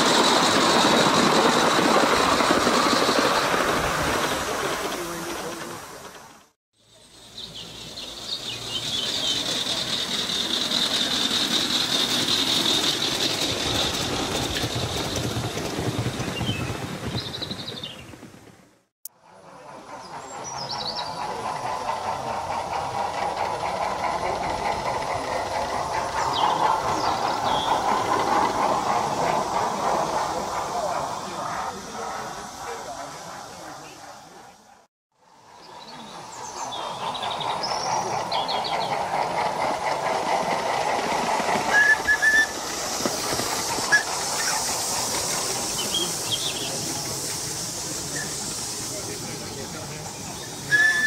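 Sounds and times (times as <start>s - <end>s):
model train wheels rattling on rail: 7.8s - 17.7s, 19.1s - 51.0s.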